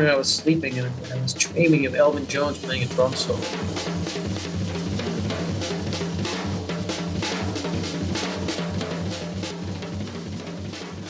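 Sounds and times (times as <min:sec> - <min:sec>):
jazz drum solo: 0:00.0 - 0:11.0.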